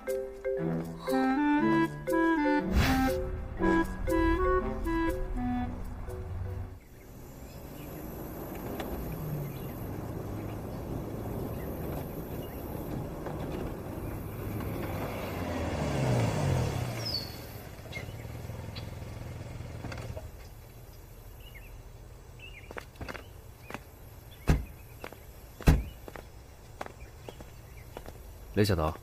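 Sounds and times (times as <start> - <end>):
car engine and tyre noise: 0.7 - 29.0.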